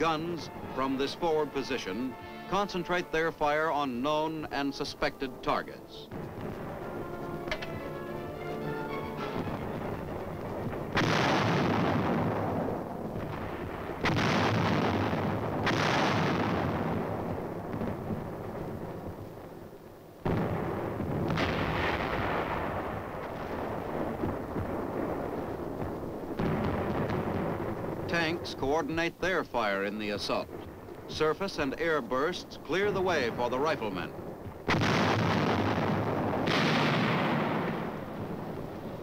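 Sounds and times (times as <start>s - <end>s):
heavy gun blasts: 9.2s - 18.0s, 33.3s - 39.0s.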